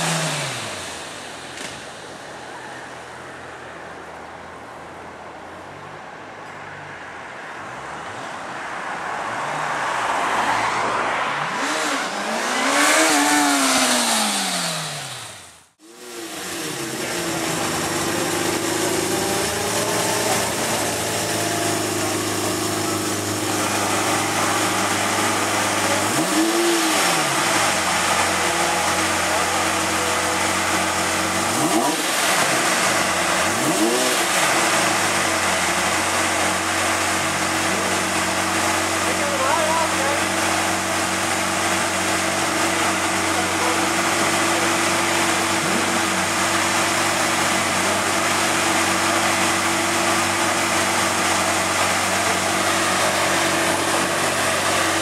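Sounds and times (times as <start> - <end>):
car engine idling: 0.0 - 6.9, 11.4 - 55.0
engine throttle blips: 11.6 - 55.0.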